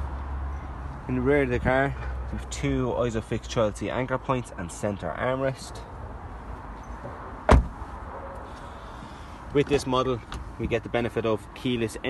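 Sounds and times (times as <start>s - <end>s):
car door shutting thud: 7.5s - 7.8s.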